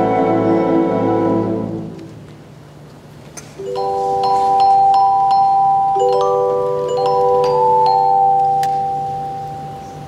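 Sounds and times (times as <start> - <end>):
wind band chord: 0.0 - 2.1
mallet percussion stroke: 3.6 - 10.0.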